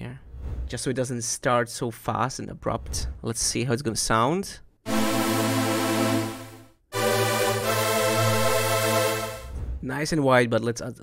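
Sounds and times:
synth pad held notes: 4.9s - 9.6s.

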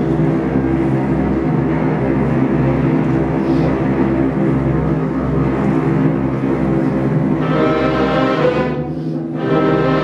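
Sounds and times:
orchestra low strings passage: 0.0s - 10.0s.

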